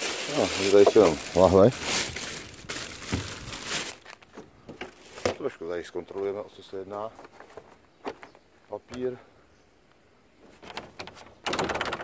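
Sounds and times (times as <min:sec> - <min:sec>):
plastic bin bag crinkling: 0:00.0 - 0:04.2.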